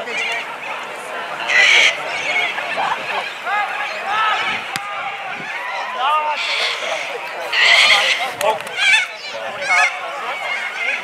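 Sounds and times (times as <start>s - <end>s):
men shouting: 1.6s - 11.0s.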